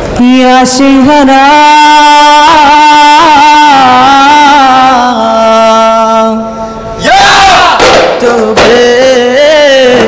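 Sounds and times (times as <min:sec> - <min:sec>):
group chanting loudly: 0:07.0 - 0:08.8.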